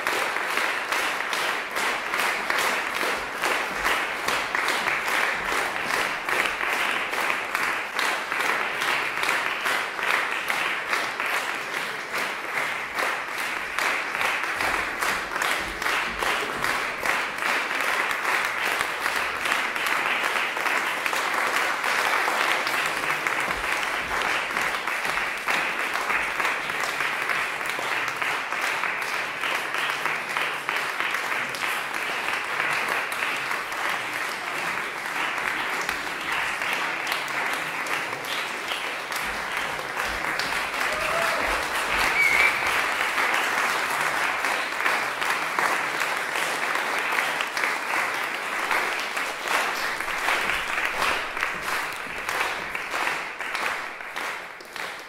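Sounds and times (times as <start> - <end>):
audience applause: 0.0 - 55.0.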